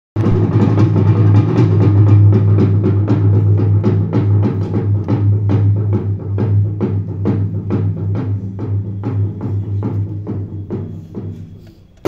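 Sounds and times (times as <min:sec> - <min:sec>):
quick drumbeats: 0:00.2 - 0:11.6.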